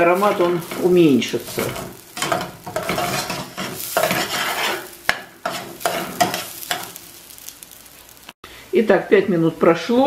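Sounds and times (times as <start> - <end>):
light sizzle: 0.0 - 10.0
spoon scraping saucepan: 0.1 - 7.0.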